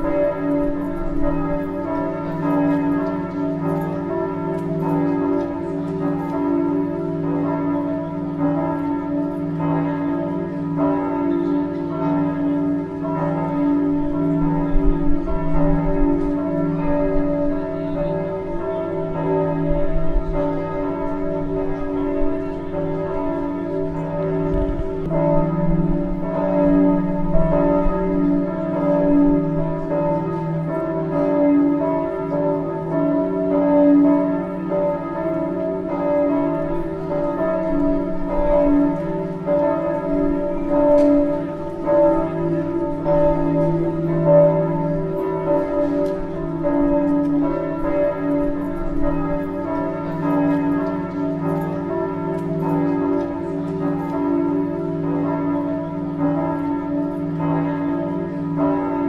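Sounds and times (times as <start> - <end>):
church bells pealing: 0.0 - 59.0.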